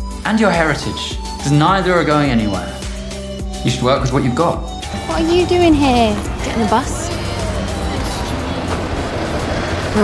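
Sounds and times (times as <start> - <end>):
background music: 0.0 - 10.0
bus engine running: 4.7 - 10.0.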